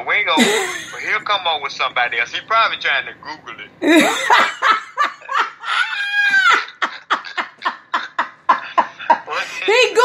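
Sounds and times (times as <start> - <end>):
person laughing: 0.4 - 1.1, 3.8 - 9.5.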